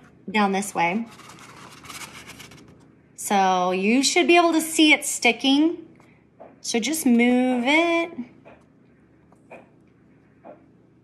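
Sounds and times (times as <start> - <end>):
paper rustling and tapping: 1.1 - 2.8.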